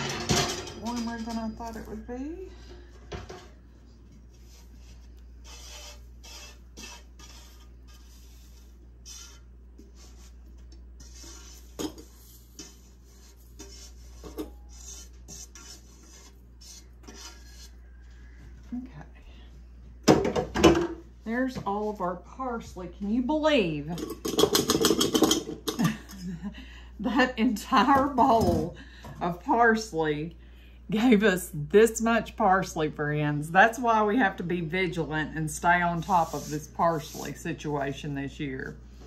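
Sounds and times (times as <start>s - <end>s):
steady low hum: 0.0s - 24.4s
dried herbs rustling and scraping: 4.2s - 18.4s, 36.0s - 37.4s.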